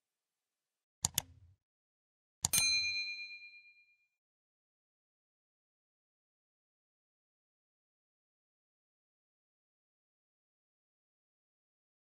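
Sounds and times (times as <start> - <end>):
mouse click: 1.0 - 1.5
bright bell ding: 2.5 - 4.0.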